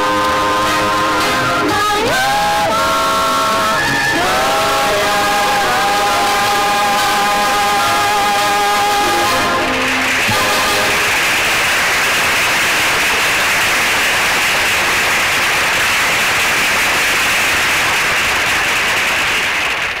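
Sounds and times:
film soundtrack hiss: 0:00.0 - 0:20.0.

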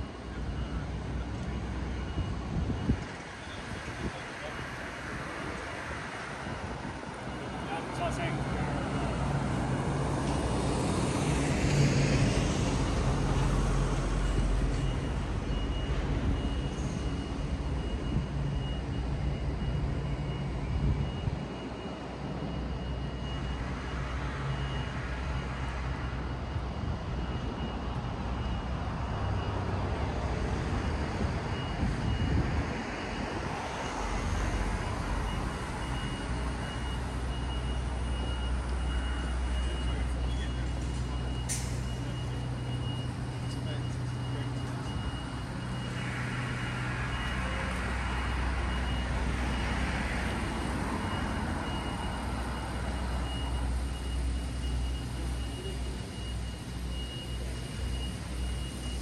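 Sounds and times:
heavy vehicle engine rumble: 0:00.0 - 0:59.0
passing traffic: 0:00.0 - 0:59.0.

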